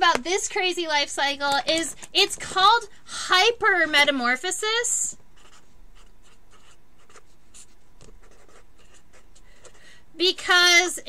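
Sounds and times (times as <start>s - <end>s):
marker writing on paper: 5.4s - 9.8s.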